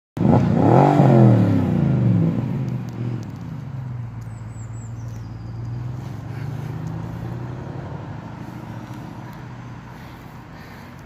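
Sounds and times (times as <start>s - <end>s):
car engine driving off: 0.2s - 11.0s.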